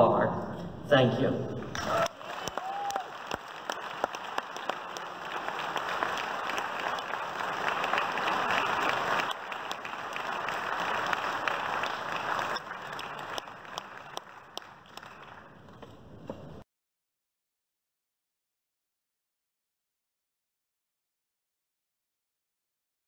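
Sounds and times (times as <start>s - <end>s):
audience applauding: 1.7s - 15.9s.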